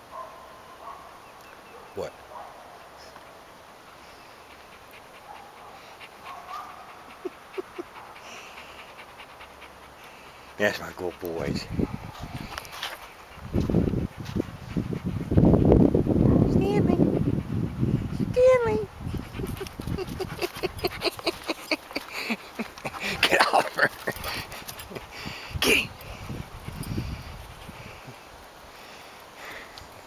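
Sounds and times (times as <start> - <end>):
dog panting: 1.7 - 30.0.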